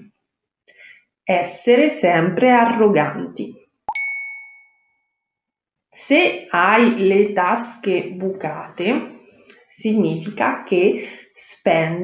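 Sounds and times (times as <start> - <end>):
bright chime ding: 3.9 - 5.0.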